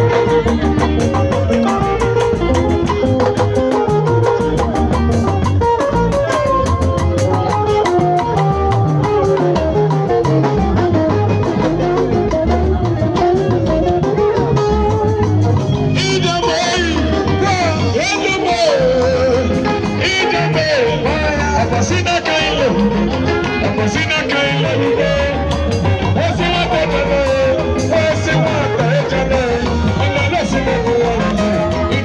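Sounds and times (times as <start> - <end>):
band music with drums and bass: 0.0 - 32.0
person singing: 5.7 - 15.2, 15.9 - 32.0.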